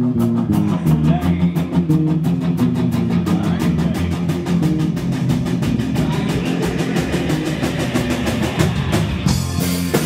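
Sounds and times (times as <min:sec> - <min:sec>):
rock band playing live: 0:00.0 - 0:10.0
fast cymbal beat: 0:01.9 - 0:10.0.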